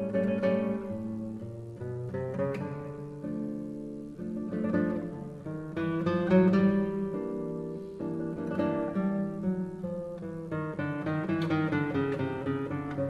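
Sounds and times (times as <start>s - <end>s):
solo classical guitar: 0.0s - 13.0s.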